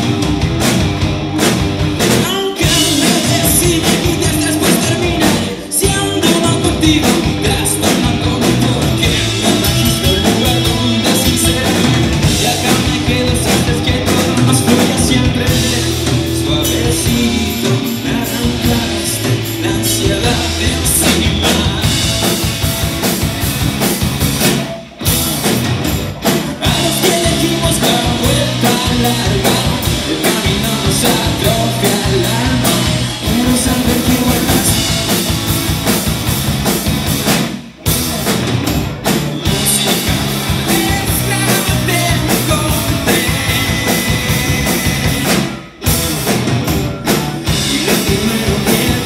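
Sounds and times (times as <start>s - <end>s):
bass guitar: 0.0s - 49.0s
drum kit: 0.0s - 49.0s
electric guitars: 0.0s - 49.0s
live rock band playing: 0.0s - 49.0s.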